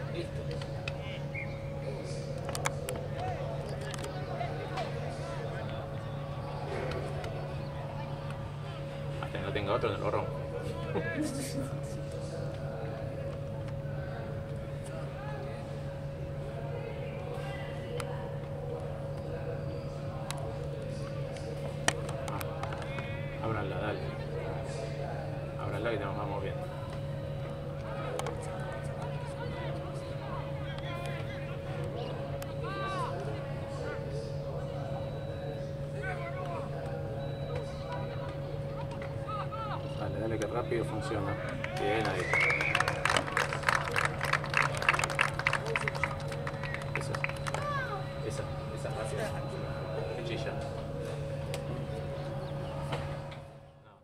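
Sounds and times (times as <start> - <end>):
steady low hum: 0.0 - 54.0
spectators clapping: 41.4 - 48.0.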